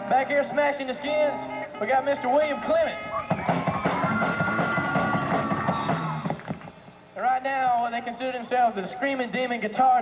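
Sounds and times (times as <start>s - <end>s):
rock drum fill: 3.3s - 6.7s.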